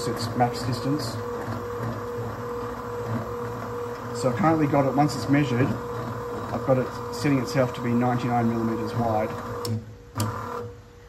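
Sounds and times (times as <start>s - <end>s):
stepper motor whining: 0.0s - 10.8s.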